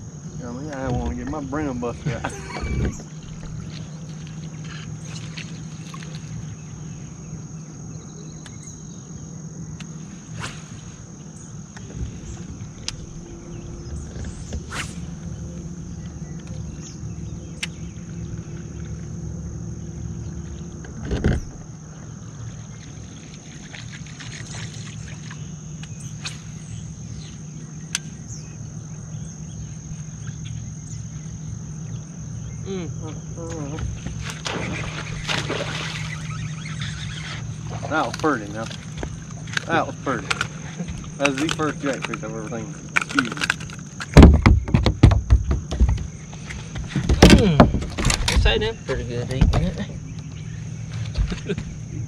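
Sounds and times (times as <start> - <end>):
high-pitched whine: 0.0 - 44.6
electric motor humming: 0.0 - 52.0.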